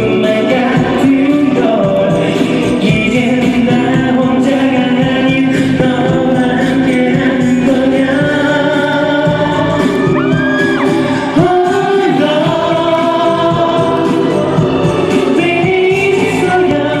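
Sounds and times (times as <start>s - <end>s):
karaoke backing track: 0.0s - 17.0s
man singing pop song: 0.0s - 17.0s.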